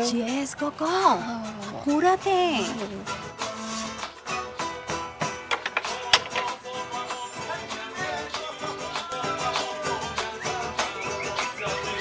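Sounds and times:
plucked acoustic guitar music: 0:00.1 - 0:12.0.

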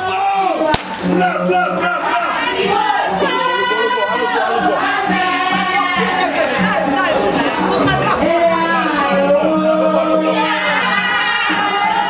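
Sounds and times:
voices singing: 0:00.0 - 0:12.0
rope whip cracking: 0:00.7 - 0:01.1.

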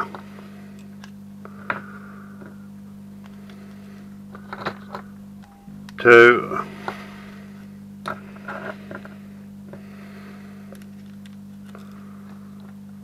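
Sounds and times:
low hum: 0:00.0 - 0:13.0.

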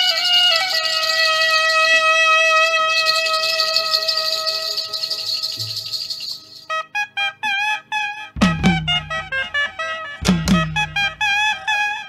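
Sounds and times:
shaking rattle: 0:00.0 - 0:01.8, 0:03.0 - 0:06.7
long held instrument note: 0:08.4 - 0:11.8
short clipped notes: 0:10.2 - 0:11.6.

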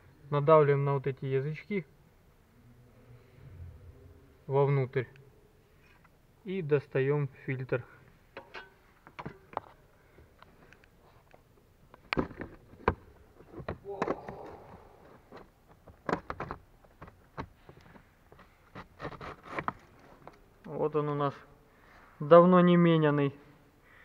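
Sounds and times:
plastic clicks and knocks: 0:15.3 - 0:18.9.

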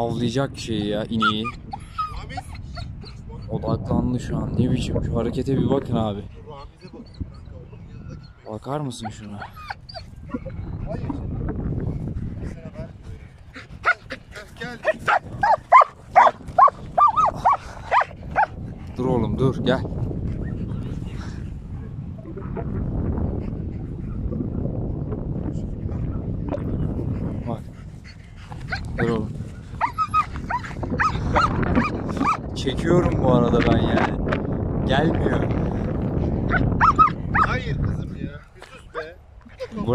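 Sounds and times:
dog whining: 0:09.0 - 0:10.5, 0:29.8 - 0:32.4, 0:36.5 - 0:37.5.

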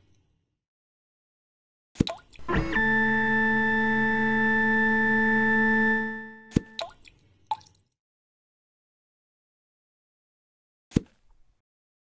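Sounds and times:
synthesized rising tone: 0:02.5 - 0:06.5.

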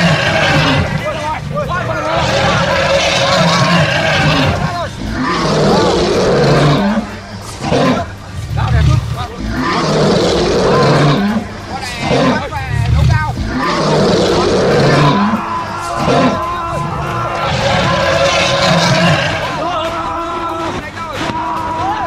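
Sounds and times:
deep low swelling sound: 0:00.0 - 0:19.6
loud shouting and yelling voices: 0:00.0 - 0:22.0.

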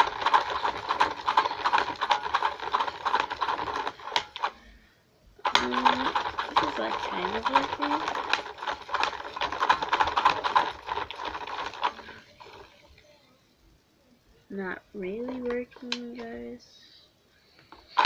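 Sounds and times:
toy motor rattling clatter: 0:00.0 - 0:04.6, 0:05.4 - 0:12.8, 0:17.7 - 0:18.0.

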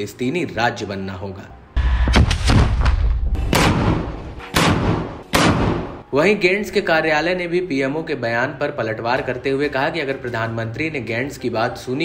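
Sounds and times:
gunshots: 0:02.0 - 0:06.0.

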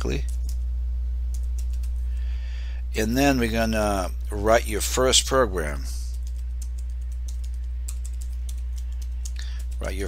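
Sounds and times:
steady low hum: 0:00.0 - 0:10.0
typing on computer keyboard: 0:01.3 - 0:02.0, 0:06.1 - 0:10.0.

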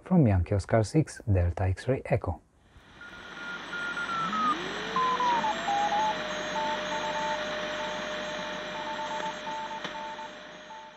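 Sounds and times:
radio static hiss: 0:02.8 - 0:10.9
beeping high tone: 0:03.0 - 0:10.9
gliding whistling tones: 0:03.0 - 0:10.9.

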